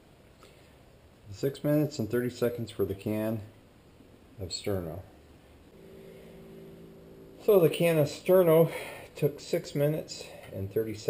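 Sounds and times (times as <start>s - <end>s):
faint motor hum: 5.6s - 10.5s.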